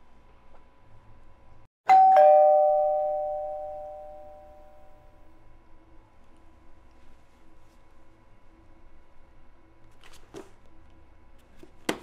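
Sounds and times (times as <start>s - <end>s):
doorbell chime ding-dong: 1.9s - 5.2s.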